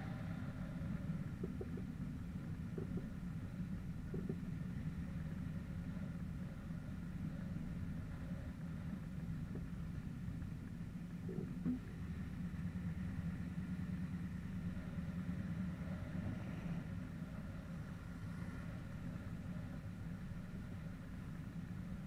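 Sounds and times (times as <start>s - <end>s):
car engine running at low revs: 0.0s - 22.0s.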